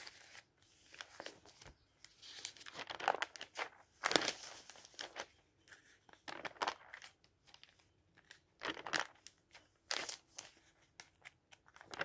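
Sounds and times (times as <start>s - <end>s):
paper pages rustling: 0.0s - 12.0s.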